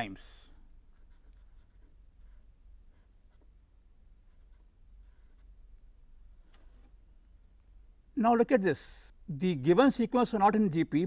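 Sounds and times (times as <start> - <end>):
marker writing on paper: 0.9 - 3.6.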